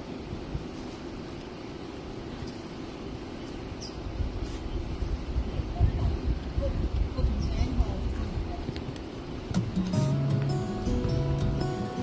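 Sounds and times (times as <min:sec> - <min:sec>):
background music with held notes: 0:09.6 - 0:12.0.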